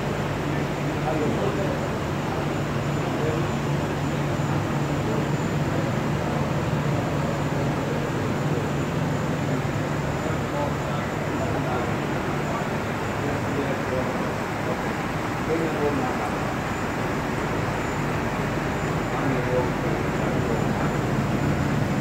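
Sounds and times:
faint high whine: 0.0 - 22.0
printing press humming: 0.0 - 22.0.

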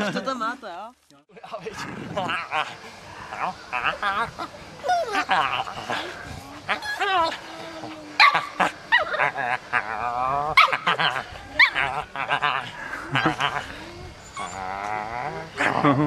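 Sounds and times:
puppy whining and yipping: 14.2 - 14.6.

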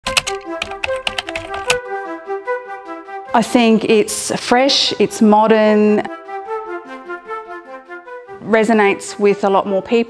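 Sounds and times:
light melodic background music: 0.0 - 10.0
keyboard typing clicks: 0.1 - 1.8.

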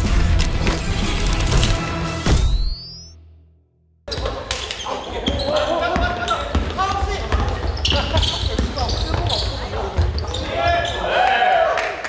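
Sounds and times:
basketball bouncing on wooden court: 5.2 - 10.5.

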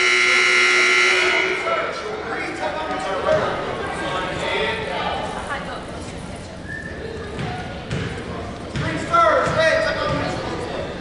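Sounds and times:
indistinct voices echoing: 0.0 - 4.2.

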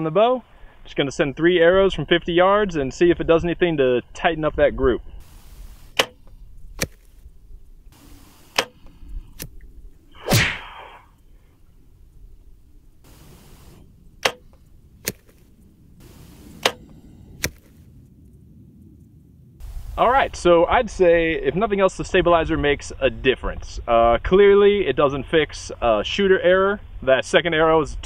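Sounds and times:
arrow striking target: 5.3 - 7.2, 8.1 - 11.1, 13.1 - 17.8
bow string snapping: 5.3 - 11.2, 13.0 - 17.8.

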